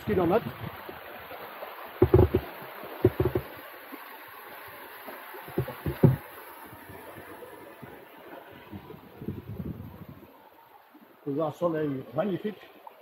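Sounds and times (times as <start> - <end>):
low thumps: 2.0 - 3.5, 5.5 - 7.0.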